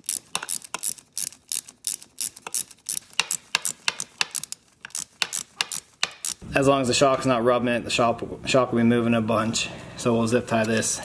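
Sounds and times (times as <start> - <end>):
ratchet wrench clicking: 0.0 - 6.4.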